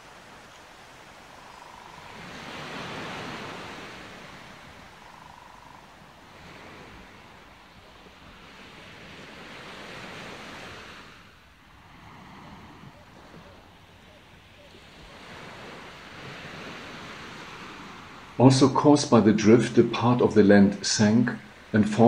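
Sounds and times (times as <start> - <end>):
wind gusting on microphone: 0.0 - 22.0.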